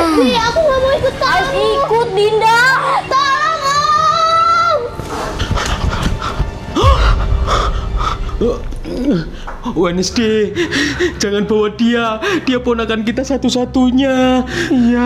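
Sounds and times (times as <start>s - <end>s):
background music: 0.0s - 15.0s
deep low sound: 6.8s - 11.7s.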